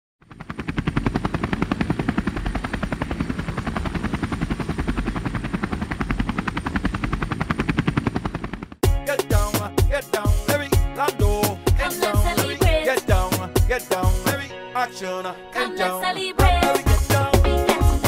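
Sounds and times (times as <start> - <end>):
helicopter rotor chopping: 0.2 - 9.6.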